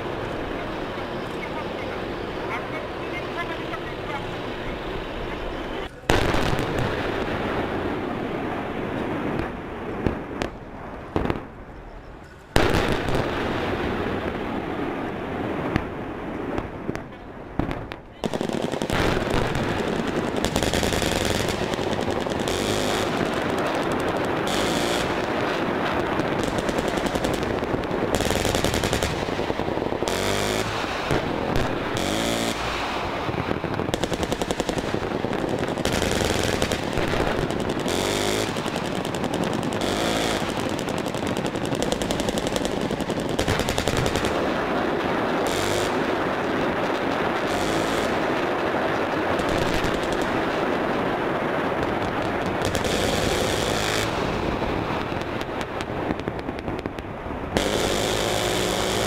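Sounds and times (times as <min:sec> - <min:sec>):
rounds exploding: 0:00.0 - 0:11.7, 0:12.5 - 0:59.0
rapid gunfire: 0:18.2 - 0:33.1, 0:33.8 - 0:48.5, 0:49.3 - 0:50.8, 0:51.8 - 0:54.6, 0:57.6 - 0:59.0.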